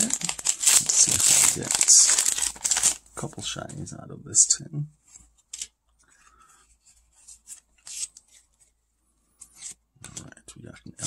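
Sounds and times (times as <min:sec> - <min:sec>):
cards scraping and snapping: 0:07.3 - 0:08.5, 0:09.4 - 0:10.3.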